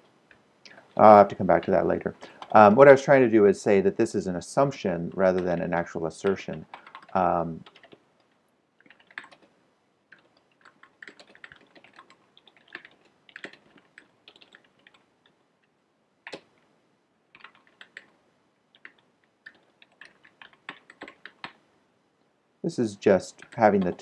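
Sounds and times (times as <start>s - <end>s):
typing on computer keyboard: 6.2s - 8.0s, 8.8s - 9.5s, 10.1s - 15.4s, 16.2s - 16.5s, 17.3s - 21.6s, 23.3s - 24.0s.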